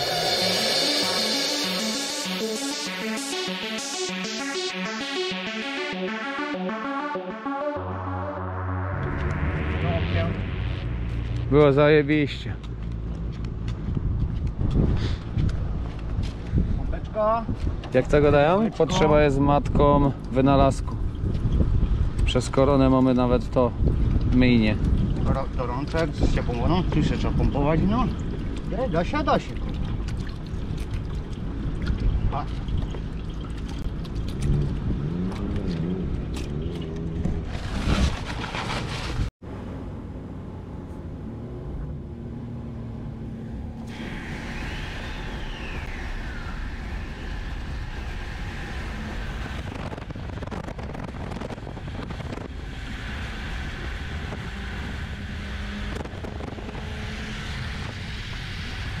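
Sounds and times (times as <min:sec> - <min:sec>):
man's voice: 0:09.7 - 0:10.6
road and engine noise in truck: 0:10.6 - 0:59.0.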